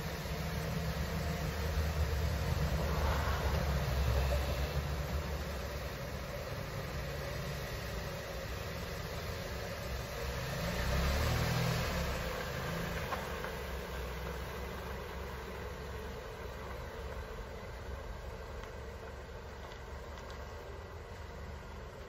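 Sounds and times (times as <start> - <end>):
car engine idling: 0.0 - 22.0.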